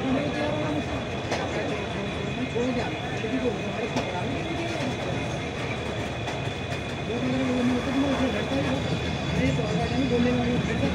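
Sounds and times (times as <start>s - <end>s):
wheels clattering on rail: 2.7s - 10.9s.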